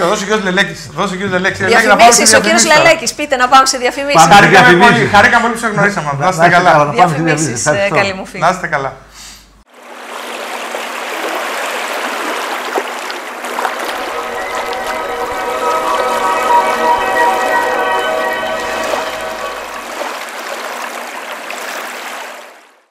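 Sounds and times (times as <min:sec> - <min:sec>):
waves washing on shore: 0:09.7 - 0:22.6
sustained musical chord: 0:13.7 - 0:20.4.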